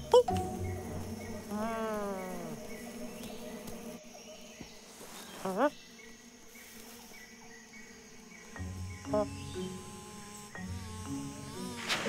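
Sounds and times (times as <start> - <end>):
cartoon bee buzzing: 0.0 - 4.0, 5.2 - 12.0.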